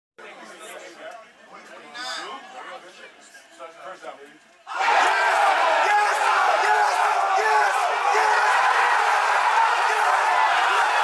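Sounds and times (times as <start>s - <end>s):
crowd chatter: 0.2s - 11.0s.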